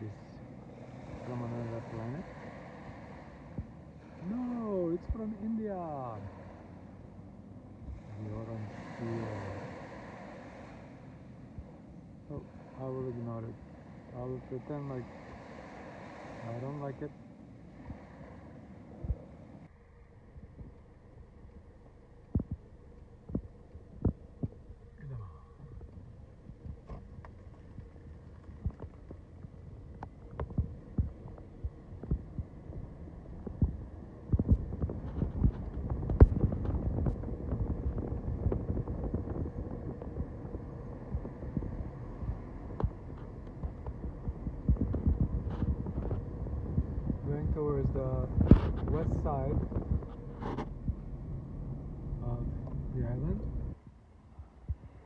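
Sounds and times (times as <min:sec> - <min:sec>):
car interior rumble: 0:00.0 - 0:55.0.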